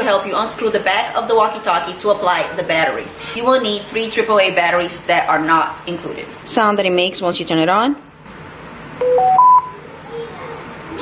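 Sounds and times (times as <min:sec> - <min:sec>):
electronic beeps rising in pitch: 0:09.0 - 0:09.7.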